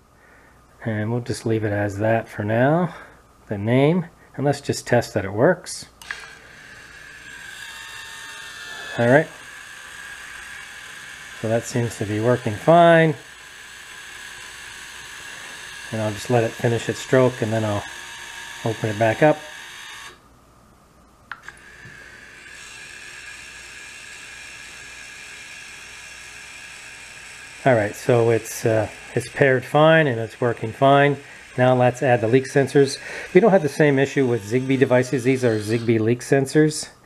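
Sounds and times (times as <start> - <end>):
motor switch click: 6.0 - 6.4
motor click: 6.0 - 6.6, 21.3 - 22.0
electric motor whine: 6.0 - 20.2, 21.3 - 36.4.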